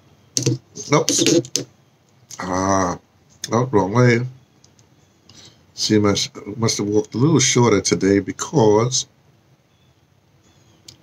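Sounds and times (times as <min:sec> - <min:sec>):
fingertips tapping touchscreen: 0:00.4 - 0:01.7
man muttering: 0:00.8 - 0:01.6, 0:02.3 - 0:03.0.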